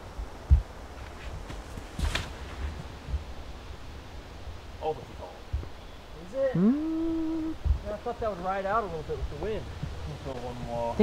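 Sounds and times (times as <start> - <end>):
wind buffeting microphone: 0.0 - 11.0
light rustling: 0.5 - 3.9.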